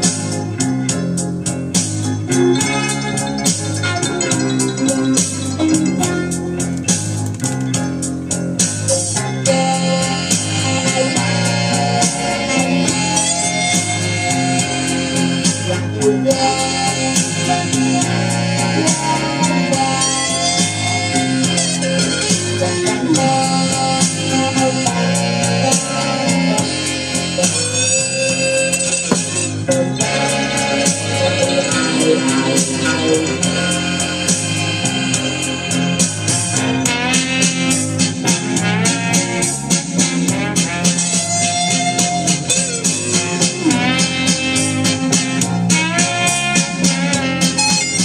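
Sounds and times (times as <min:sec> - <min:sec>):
band backing with bass and keyboard: 0:00.0 - 0:48.0
blues electric guitar lead: 0:00.0 - 0:48.0.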